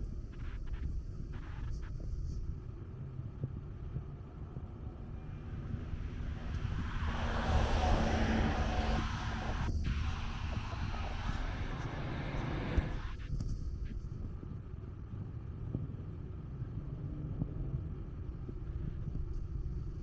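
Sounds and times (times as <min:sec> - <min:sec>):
low traffic rumble: 0:02.7 - 0:13.2
vehicle passing by: 0:05.3 - 0:13.1.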